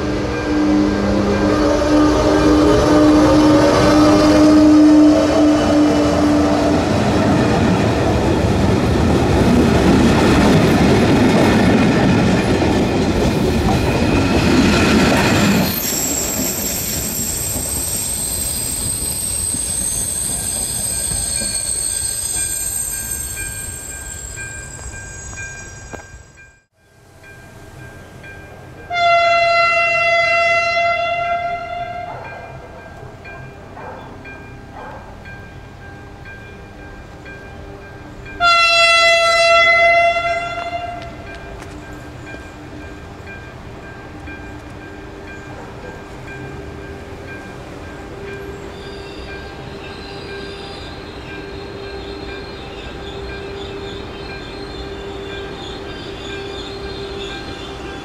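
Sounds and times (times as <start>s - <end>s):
train horn blast: 0.0s - 7.3s, 28.9s - 32.2s, 38.4s - 41.2s
train coaches rumbling and clattering: 0.0s - 29.0s, 32.0s - 58.0s
electric locomotive whine: 0.0s - 58.0s
thin high tones: 15.4s - 28.5s.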